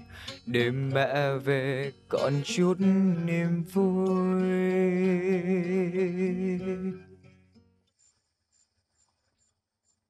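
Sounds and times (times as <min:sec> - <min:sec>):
faint insect chirping: 0:07.9 - 0:10.0.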